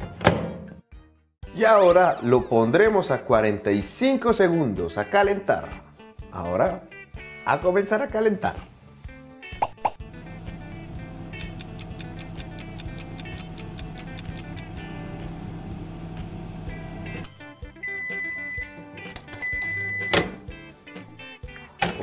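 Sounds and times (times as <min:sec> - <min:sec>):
background music: 0:00.0 - 0:22.0
microwave oven humming: 0:10.1 - 0:17.2
sharp click: 0:11.4 - 0:14.8.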